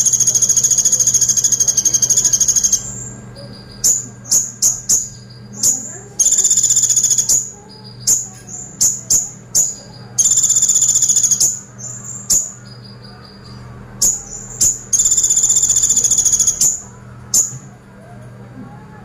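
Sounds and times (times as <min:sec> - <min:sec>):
bird rattling trills: 0:00.0 - 0:17.6
sharp high bird chips: 0:00.0 - 0:17.7
faint low hum: 0:00.0 - 0:19.0.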